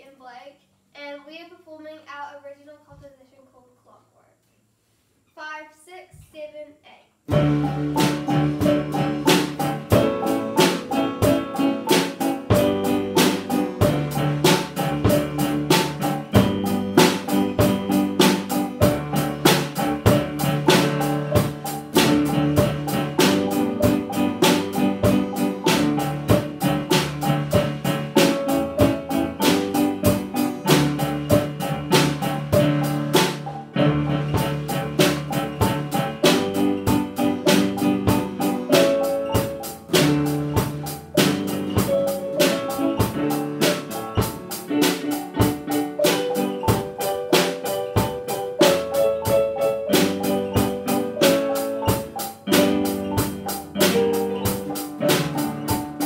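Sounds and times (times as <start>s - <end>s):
drums keeping steady beat: 7.3s - 56.0s
small band playing instrumental: 7.3s - 56.0s.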